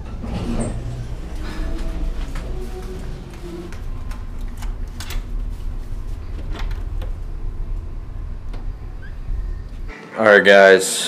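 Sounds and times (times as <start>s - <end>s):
elevator doors sliding open: 0.0s - 3.8s
elevator low rumble: 0.0s - 9.9s.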